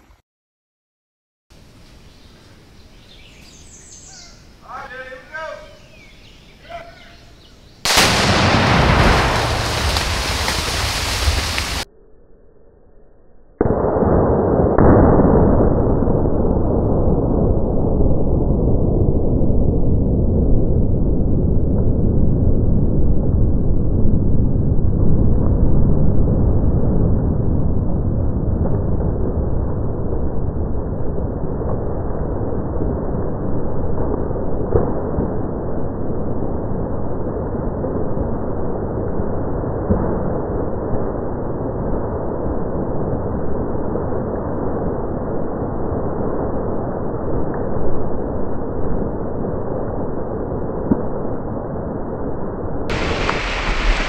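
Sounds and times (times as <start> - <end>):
loud explosion blast: 7.8 - 11.9, 13.6 - 23.3.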